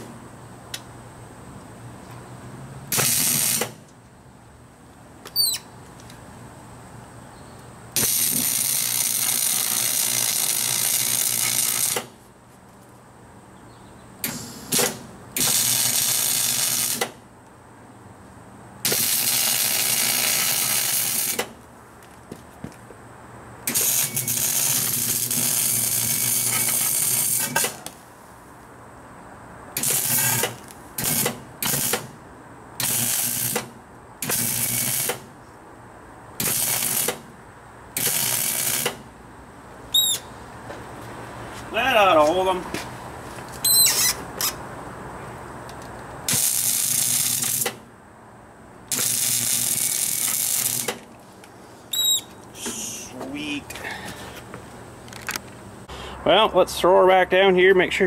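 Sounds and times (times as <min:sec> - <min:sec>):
electric arc welding crackling hiss: 0:02.9 - 0:03.8, 0:08.0 - 0:12.2, 0:14.2 - 0:17.2, 0:18.8 - 0:21.5, 0:23.7 - 0:28.0, 0:29.8 - 0:32.1, 0:32.8 - 0:35.3, 0:36.4 - 0:37.2, 0:38.0 - 0:39.0, 0:46.3 - 0:47.8, 0:48.9 - 0:51.0.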